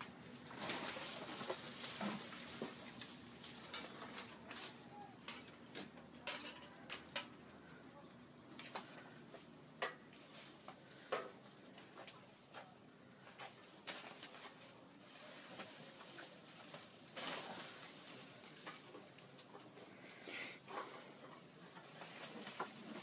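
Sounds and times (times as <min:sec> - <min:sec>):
leafy branches rustling: 0:00.0 - 0:23.0.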